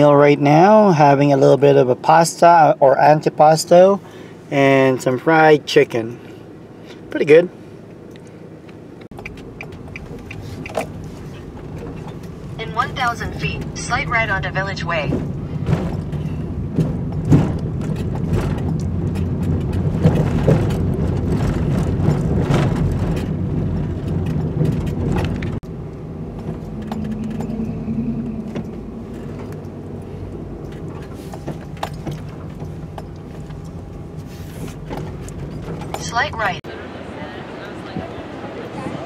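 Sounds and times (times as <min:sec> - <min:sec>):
van engine and road rumble: 0:00.0 - 0:39.0
light rattles and clicks: 0:15.3 - 0:25.6.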